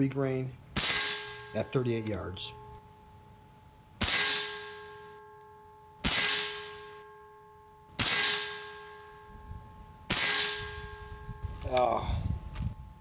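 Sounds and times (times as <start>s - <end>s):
air rifle shots: 0.7s - 1.7s, 4.0s - 5.2s, 6.0s - 7.0s, 8.0s - 9.0s, 10.1s - 11.0s
metallic ring: 0.8s - 11.7s.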